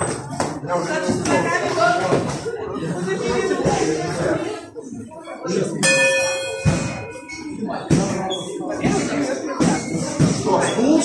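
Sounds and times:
boxing bell ringing: 0:05.8 - 0:07.8.

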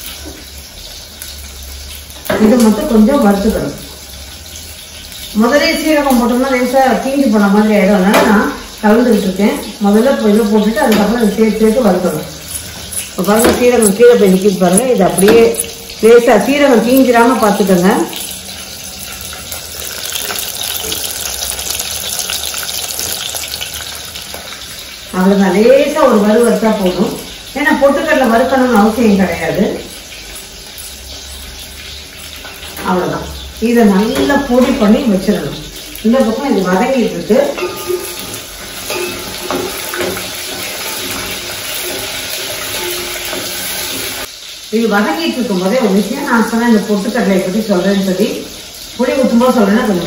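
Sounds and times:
cooking hiss on gas stove: 0:00.0 - 0:50.0
lentils sizzling in a pan: 0:00.0 - 0:50.0.

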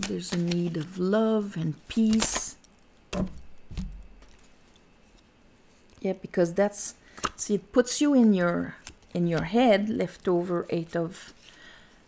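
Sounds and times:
cards clattering: 0:00.0 - 0:02.6
cards rustling and clicking: 0:00.0 - 0:02.6, 0:08.2 - 0:09.7.

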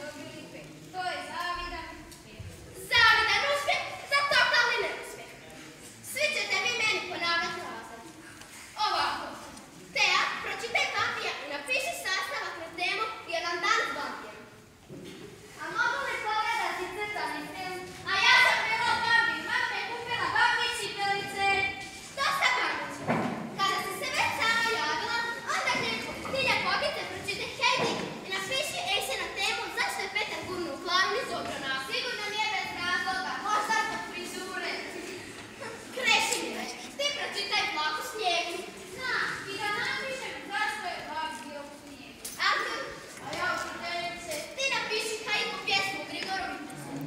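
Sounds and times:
children talking in a hall: 0:00.0 - 0:47.0.

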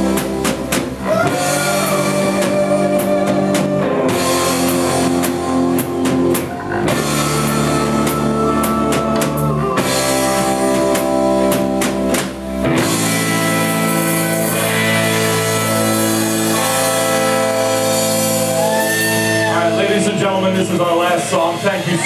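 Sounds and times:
bass guitar: 0:00.0 - 0:22.0
drum and cymbal hits: 0:00.0 - 0:22.0
electric guitar chords: 0:00.0 - 0:22.0.

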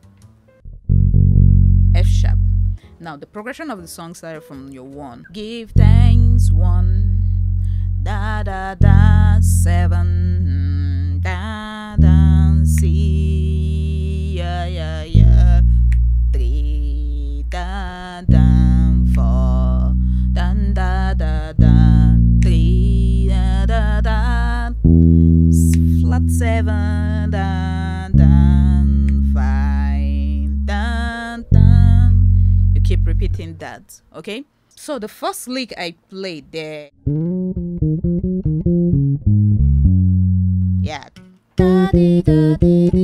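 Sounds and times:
electric bass guitar notes: 0:00.6 - 0:02.8, 0:05.7 - 0:33.6, 0:36.9 - 0:43.0
woman singing: 0:04.4 - 0:07.3, 0:08.0 - 0:24.9, 0:25.5 - 0:33.6, 0:41.6 - 0:43.0.

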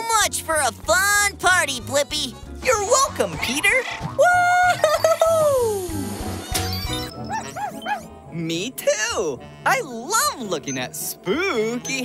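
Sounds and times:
background music: 0:00.0 - 0:12.0
cartoon dog yipping: 0:06.4 - 0:08.1.

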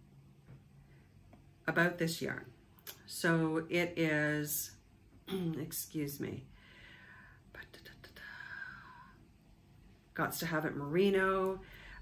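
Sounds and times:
woman whispering: 0:07.5 - 0:08.6.

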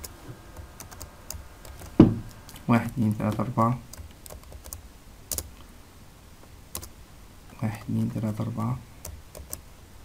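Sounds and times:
computer keyboard keystrokes: 0:03.3 - 0:05.5, 0:06.7 - 0:06.9, 0:09.0 - 0:09.6.

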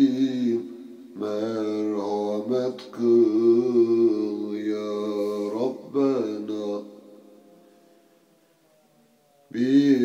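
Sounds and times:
solo voice chanting a hymn: 0:00.0 - 0:08.3, 0:09.5 - 0:10.0.

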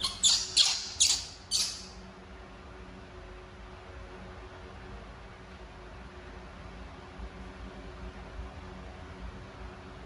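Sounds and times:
baby monkey squealing: 0:00.0 - 0:02.0.

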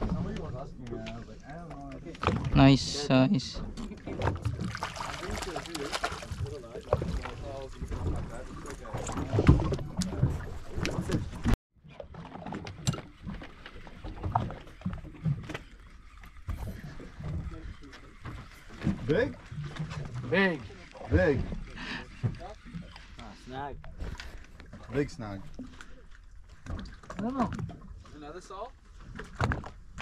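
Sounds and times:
boat on water: 0:00.0 - 0:30.0.

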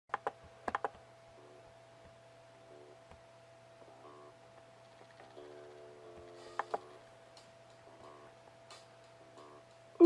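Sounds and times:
laptop keys clicking: 0:00.1 - 0:01.0
faint electrical hum: 0:00.1 - 0:10.0.

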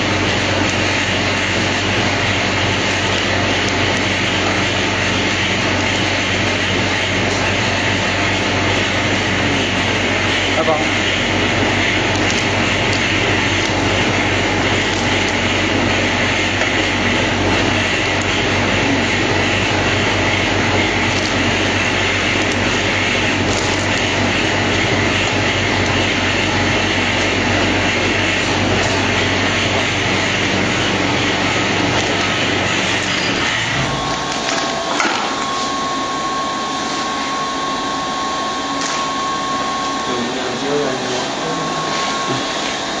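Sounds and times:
low machine hum: 0:00.0 - 0:43.0
packaging machinery running: 0:00.0 - 0:43.0
steady high tone: 0:33.3 - 0:43.0.

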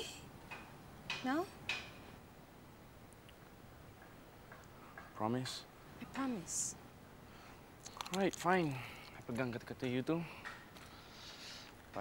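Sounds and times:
faint background hiss: 0:00.0 - 0:12.0
tiny faint clicks: 0:07.8 - 0:09.4.

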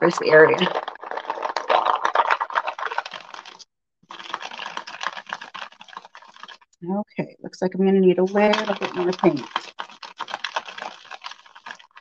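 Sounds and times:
wooden beads rattling in a bowl: 0:00.0 - 0:06.7, 0:08.2 - 0:12.0.

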